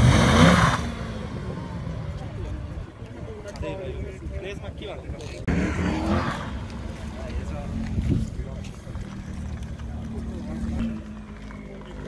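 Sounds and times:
car engine revving: 0.0s - 2.5s, 5.4s - 12.0s.

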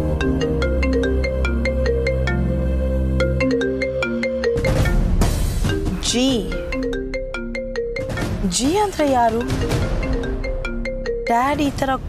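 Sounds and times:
smartphone ringtone melody: 0.0s - 11.7s.

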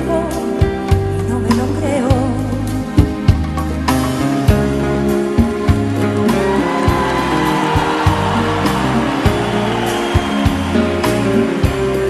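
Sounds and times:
bass notes: 0.0s - 12.0s.

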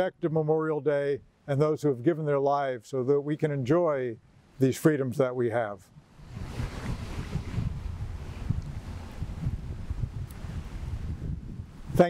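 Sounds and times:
wind rumble on microphone: 5.9s - 12.0s.

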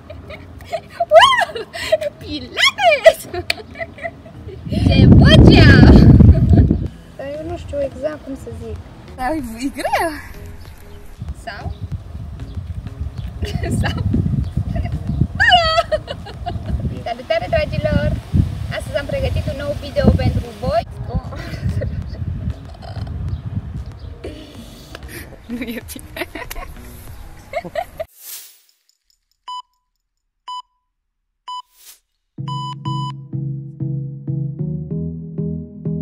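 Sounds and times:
woman laughing: 0.0s - 5.1s, 5.8s - 6.8s, 13.4s - 16.9s, 21.4s - 23.1s, 24.2s - 28.1s
wind rumble on microphone: 4.4s - 28.1s
electronic timer beeps: 29.5s - 29.9s, 30.5s - 30.8s, 31.5s - 31.8s, 32.4s - 33.3s.

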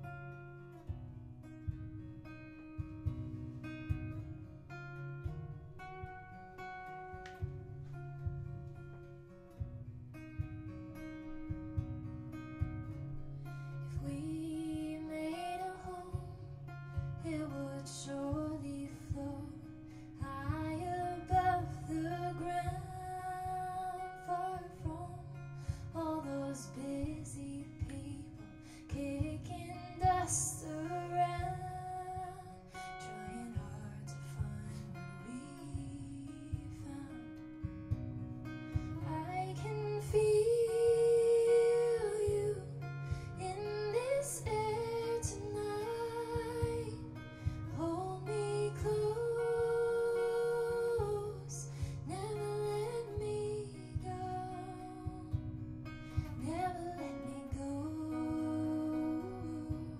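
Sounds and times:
acoustic guitar looped pattern: 0.0s - 59.9s
woman singing: 10.4s - 59.9s.

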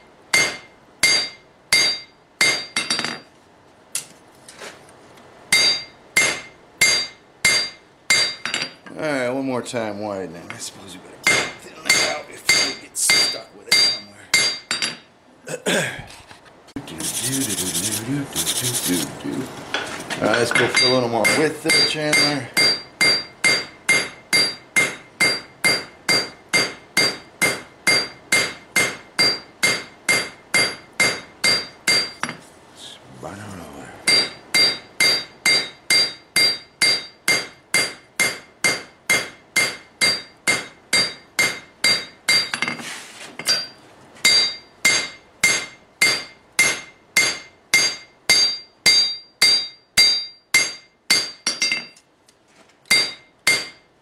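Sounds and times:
hammer striking metal on anvil: 0.3s - 3.2s, 5.5s - 8.8s, 11.2s - 15.0s, 20.3s - 32.4s, 34.1s - 42.8s, 43.4s - 52.0s, 52.9s - 53.9s.

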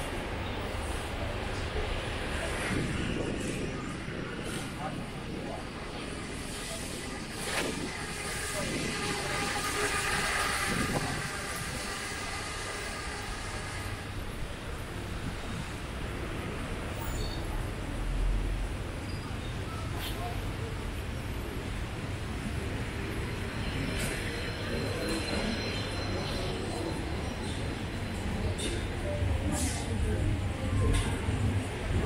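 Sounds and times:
people's voices: 0.0s - 15.8s, 16.6s - 32.0s.

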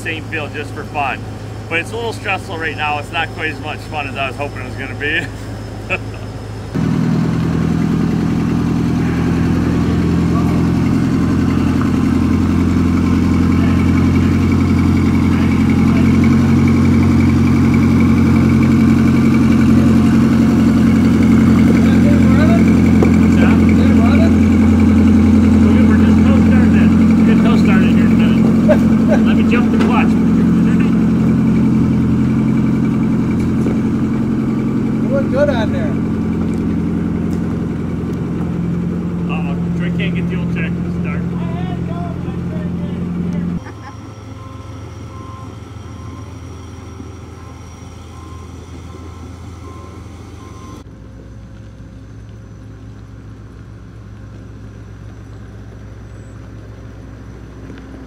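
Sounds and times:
combine engine running: 0.0s - 58.0s.

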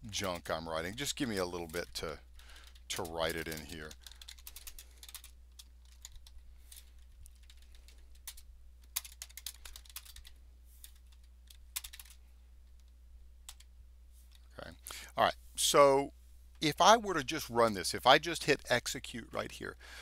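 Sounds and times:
typing on computer keyboard: 0.2s - 12.2s, 12.8s - 13.7s.

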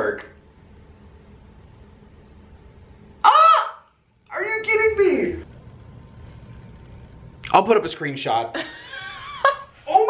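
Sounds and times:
man squealing with delight: 3.2s - 3.9s.

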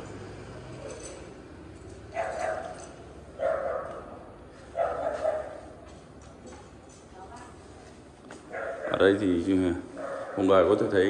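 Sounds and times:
dog barking: 2.1s - 5.8s, 8.5s - 9.2s, 10.0s - 10.7s.

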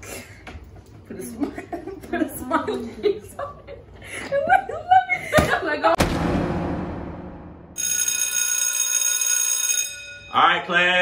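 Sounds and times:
hit: 6.0s - 7.8s
electric school bell ringing: 7.8s - 11.0s.

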